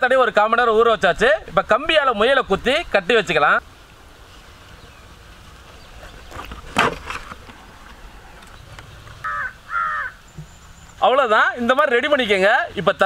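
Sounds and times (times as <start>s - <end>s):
quiet outdoor background: 0.0s - 13.0s
crow cawing: 9.2s - 10.2s.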